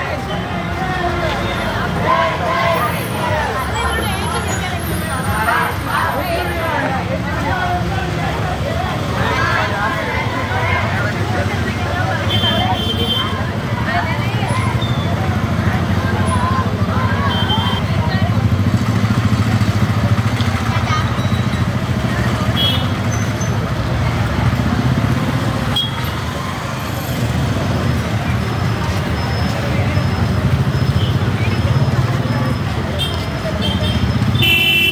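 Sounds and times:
low hum of vehicle engines: 0.0 - 34.9
many voices talking: 0.0 - 34.9.

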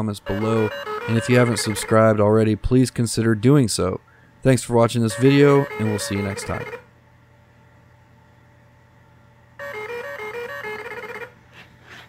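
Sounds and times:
electronic tone melody: 0.2 - 2.2, 5.1 - 6.8, 9.6 - 11.4.

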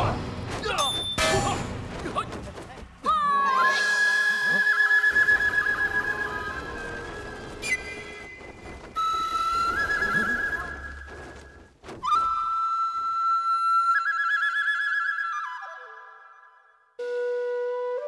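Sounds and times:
flute with fluttering trills: 3.3 - 18.0.

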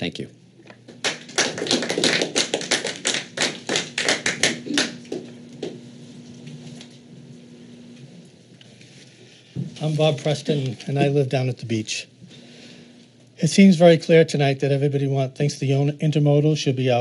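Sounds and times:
audience clapping: 0.8 - 5.8.

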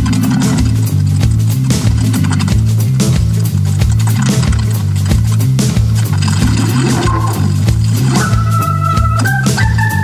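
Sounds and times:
drums: 0.0 - 10.0
pulsing bass line: 0.0 - 10.0.

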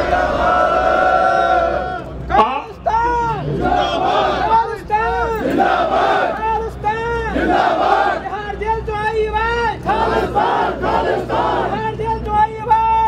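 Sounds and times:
crowd shouting slogans: 0.0 - 12.3.

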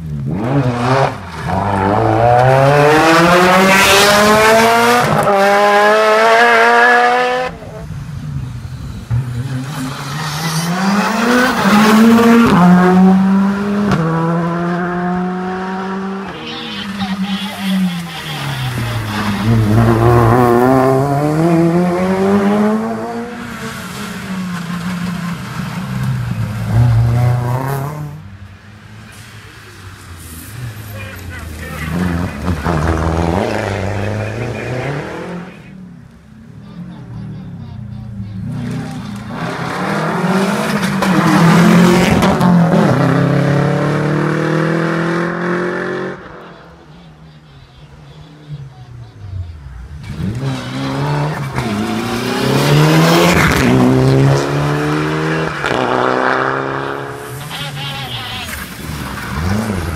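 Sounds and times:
rally car engines at full throttle: 0.0 - 59.9.

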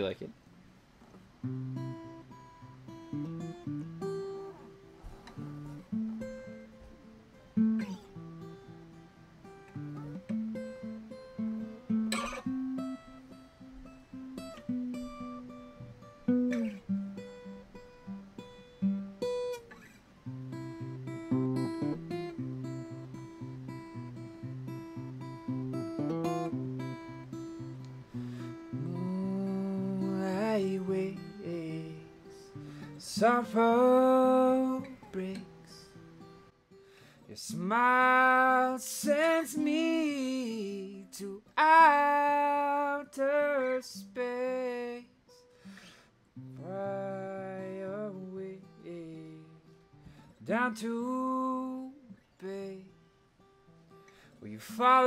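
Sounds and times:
acoustic guitar playing: 0.0 - 55.0.

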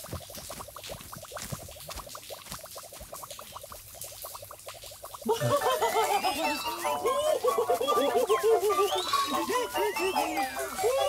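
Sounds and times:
rising cartoon bloops: 5.1 - 11.0.

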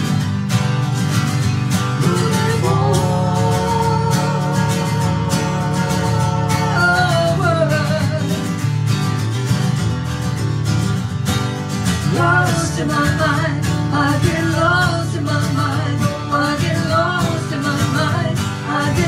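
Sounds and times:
acoustic guitars strummed: 0.0 - 19.0
woman singing: 2.0 - 8.6, 12.0 - 19.0.

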